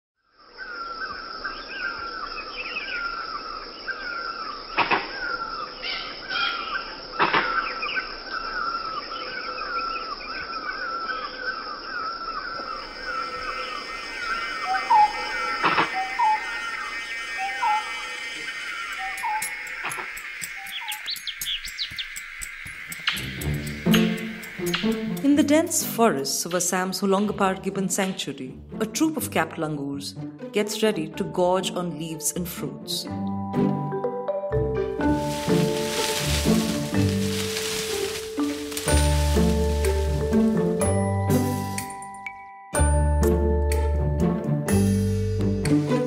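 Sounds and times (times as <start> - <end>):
lower rising bird call: 3.9 - 25.2
bird chirping call: 5.2 - 25.9.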